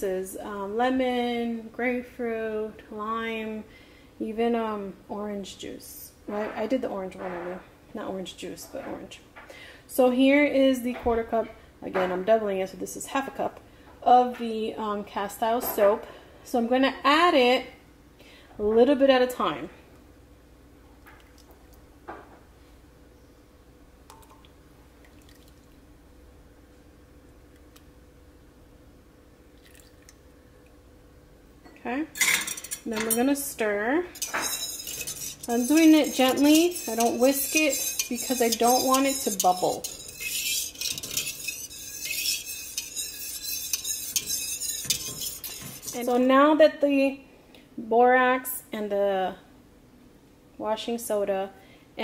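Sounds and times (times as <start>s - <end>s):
steady low hum: 16.0s - 48.1s
liquid trickling into water: 24.1s - 25.8s, 29.5s - 30.2s
wire whisk scraping metal pot: 32.2s - 46.4s.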